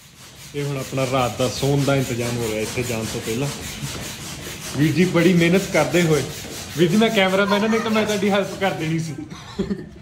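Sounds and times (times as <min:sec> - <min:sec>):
hand air pump hissing: 0:00.0 - 0:09.1.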